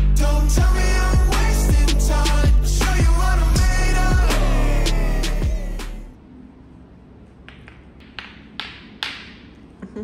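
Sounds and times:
billiard balls clacking: 7.4s - 9.7s.

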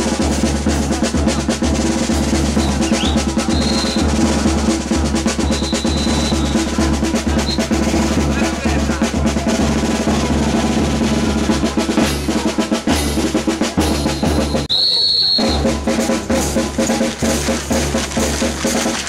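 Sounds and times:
bass drum and cymbals marching beat: 0.0s - 19.0s
shrill whistle blast: 2.6s - 4.3s, 5.4s - 6.7s, 7.4s - 7.8s, 14.0s - 15.9s.

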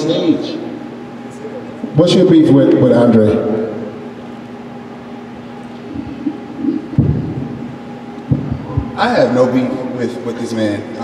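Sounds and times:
faint steady hum: 0.0s - 11.0s
microphone bumps and handling: 5.9s - 9.0s.

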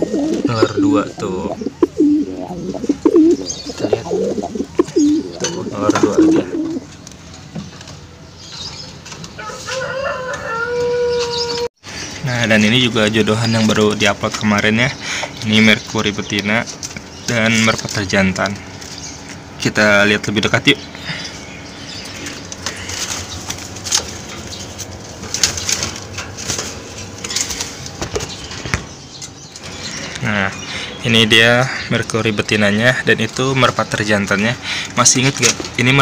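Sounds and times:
straw crackling and rustling: 0.0s - 10.2s, 21.8s - 29.8s.

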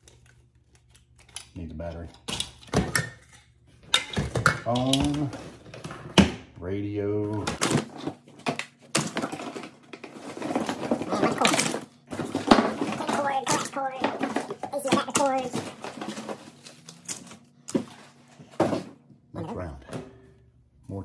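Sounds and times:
plastic items clattering into tote: 7.4s - 19.0s.

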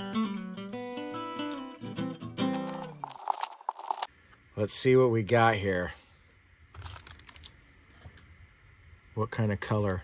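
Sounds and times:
trading cards clicking when shuffled: 2.6s - 4.1s.

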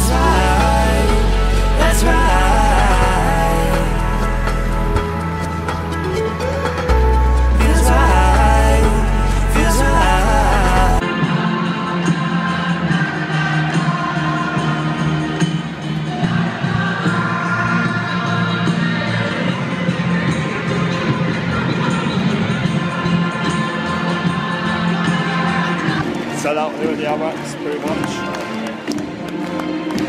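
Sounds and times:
large crowd noise: 0.0s - 30.0s
music over public address system: 0.0s - 30.0s.

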